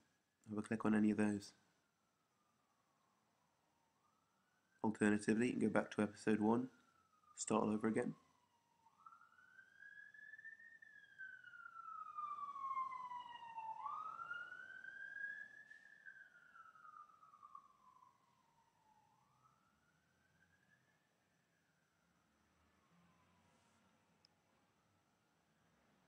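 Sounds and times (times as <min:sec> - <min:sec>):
faint siren wailing: 0:00.0 - 0:26.0.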